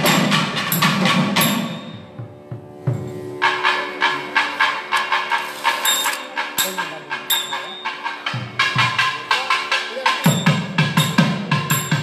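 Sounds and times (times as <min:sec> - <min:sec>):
percussion fast sharp beat: 0:00.0 - 0:12.0.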